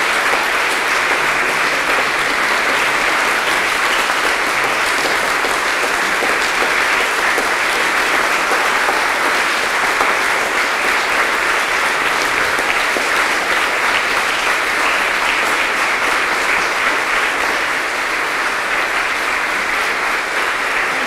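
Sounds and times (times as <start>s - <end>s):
audience applauding: 0.0s - 21.0s.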